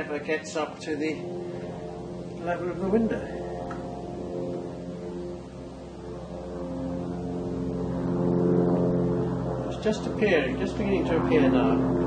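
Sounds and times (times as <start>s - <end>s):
mechanical drone: 0.0s - 12.0s.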